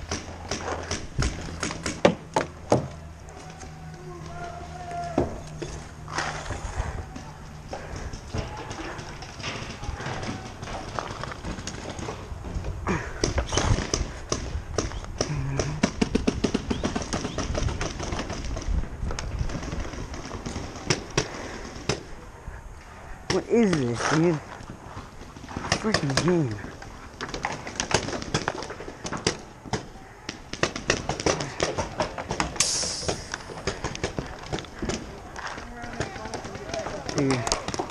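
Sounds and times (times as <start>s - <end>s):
paintball markers firing: 13.2s - 18.7s, 27.2s - 37.9s.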